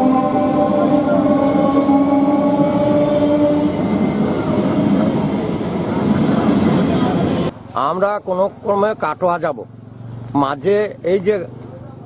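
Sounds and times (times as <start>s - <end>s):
steady tones: 0.0s - 7.5s
train rumbling on rails: 0.0s - 7.6s.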